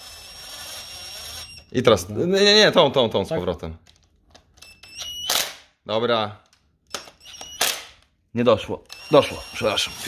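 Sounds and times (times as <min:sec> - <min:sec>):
impact wrench motor whine: 0:00.0 - 0:01.7, 0:06.9 - 0:07.9, 0:08.9 - 0:10.0.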